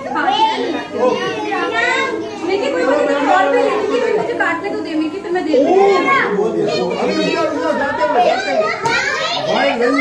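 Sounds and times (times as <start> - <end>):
children and adults chattering: 0.0 - 10.0.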